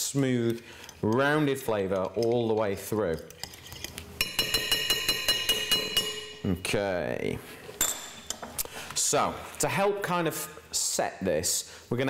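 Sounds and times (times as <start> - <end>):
metal spoon clinking glass bowl: 3.2 - 6.4.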